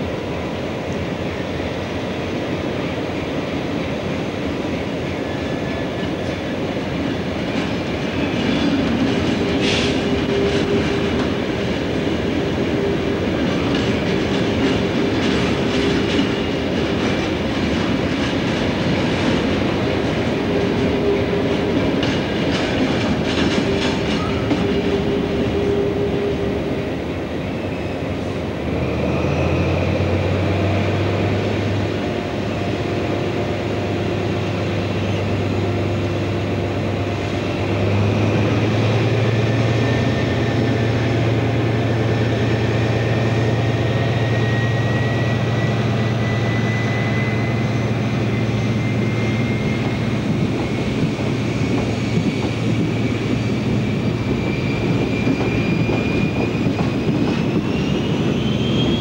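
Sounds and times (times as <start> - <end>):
train wheels squealing: 0.0 - 59.0
train wheels clattering: 5.4 - 26.9, 37.7 - 59.0.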